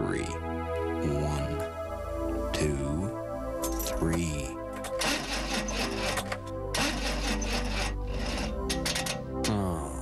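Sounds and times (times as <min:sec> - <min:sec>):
music: 0:00.0 - 0:10.0
car engine cranking without starting: 0:04.7 - 0:09.5.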